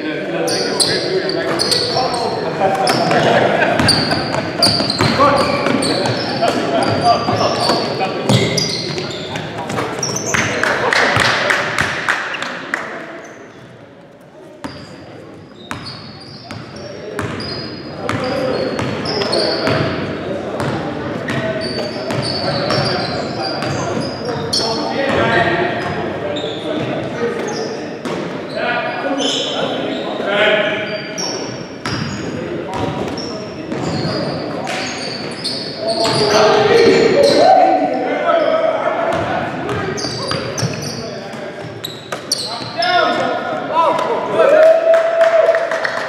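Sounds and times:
sneakers squeaking: 0.0 - 44.2
players calling out: 0.4 - 13.4, 15.6 - 45.5.

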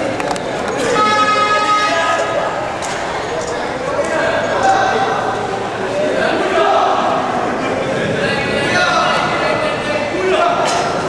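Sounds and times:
crowd chatter: 0.0 - 11.0
long held shout or horn: 0.9 - 2.2.

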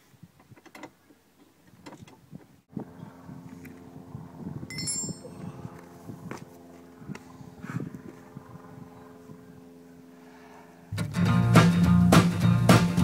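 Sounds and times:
steady low hum: 2.7 - 11.0
high metallic ring: 4.7 - 5.6.

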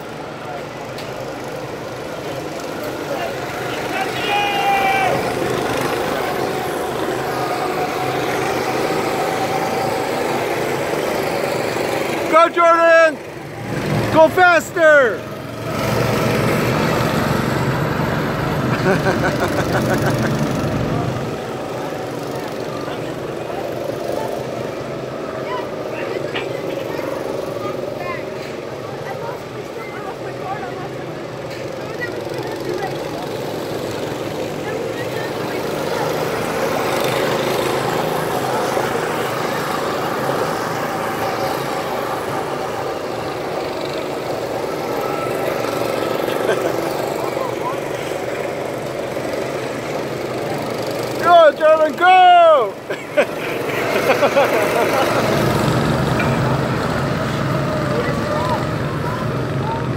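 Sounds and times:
go-kart engines droning: 0.0 - 59.9.

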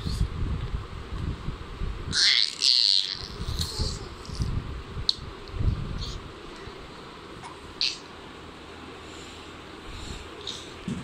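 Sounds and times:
baby squealing: 2.1 - 3.4.

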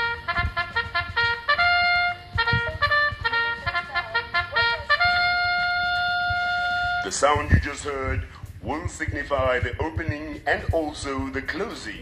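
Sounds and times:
brass-like jingle: 0.0 - 7.5.

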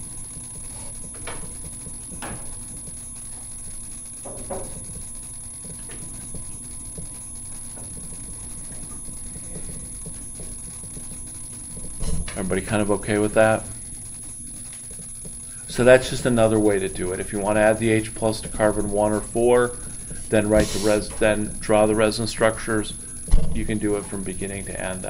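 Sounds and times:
thin high whine: 0.0 - 25.0.

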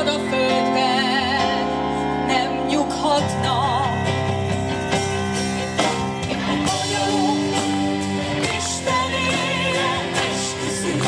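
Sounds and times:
bass guitar: 0.0 - 11.0
drums: 2.9 - 11.0.

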